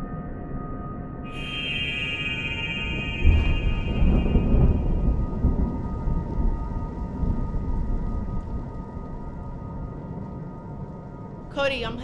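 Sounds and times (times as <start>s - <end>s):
faint drone of sustained tones: 0.0s - 11.5s
thunder rumbling: 1.4s - 12.0s.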